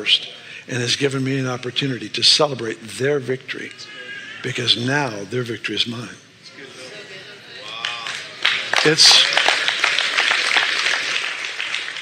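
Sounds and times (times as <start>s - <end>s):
congregation applauding: 7.6s - 12.0s.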